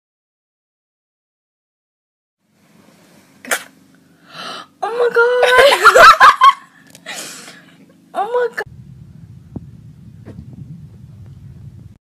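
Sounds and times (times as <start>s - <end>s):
woman laughing loudly: 5.2s - 7.4s.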